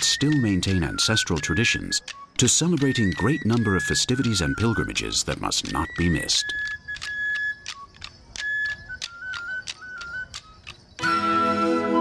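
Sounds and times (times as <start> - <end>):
sharp regular stick clacks: 0.0 - 11.1
high flute melody: 0.0 - 12.0.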